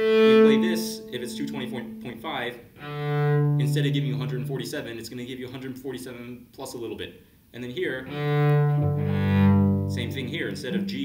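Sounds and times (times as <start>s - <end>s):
bowed cello: 0.0s - 4.8s, 8.0s - 11.0s.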